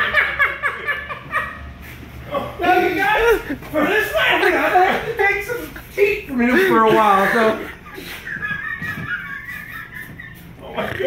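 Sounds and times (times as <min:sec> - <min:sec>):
high-pitched wheezing laughter: 0:06.6 - 0:11.0.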